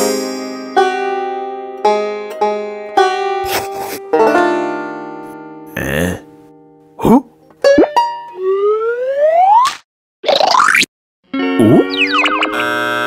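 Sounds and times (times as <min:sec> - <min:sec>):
held music chord: 0:04.0 - 0:07.0
cartoon boings and plops: 0:07.6 - 0:10.9, 0:11.6 - 0:12.5.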